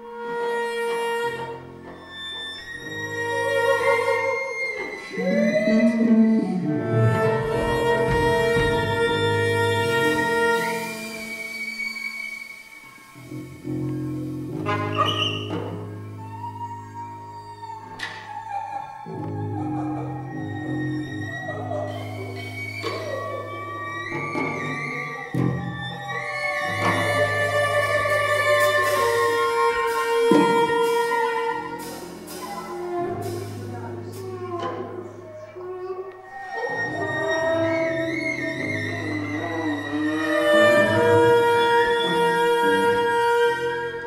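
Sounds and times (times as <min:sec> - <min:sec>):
cello bowed high note: 0:00.0 - 0:44.0
harmonica: 0:00.0 - 0:44.0
improvised ensemble music: 0:00.0 - 0:44.0
soprano saxophone: 0:00.0 - 0:44.0.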